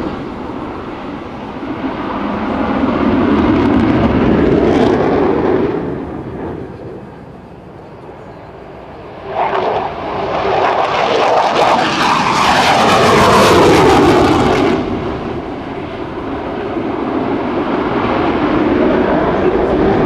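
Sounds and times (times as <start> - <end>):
jet roar crackling: 0.0 - 20.0
low jet rumble: 0.0 - 20.0.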